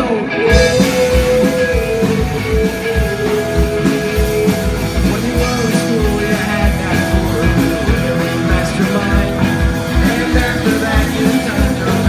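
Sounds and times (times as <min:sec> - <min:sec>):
electric bass: 0:00.0 - 0:12.0
electric guitars: 0:00.0 - 0:12.0
drum kit driving beat: 0:00.5 - 0:12.0.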